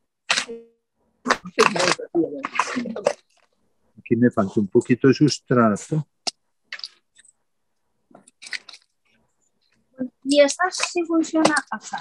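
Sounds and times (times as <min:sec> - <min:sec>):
plastic pot crinkling: 0:01.3 - 0:03.5, 0:08.2 - 0:08.9.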